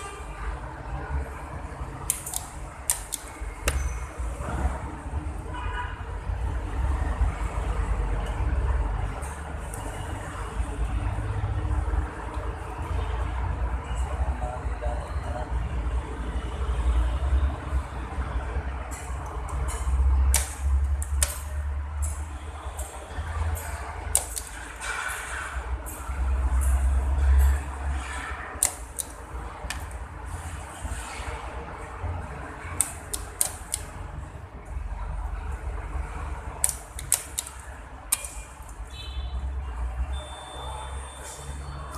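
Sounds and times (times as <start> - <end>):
cables and connectors clicking: 1.9 - 4.1, 18.9 - 22.2, 22.8 - 24.9, 26.6 - 30.1, 32.5 - 34.3, 36.4 - 38.9.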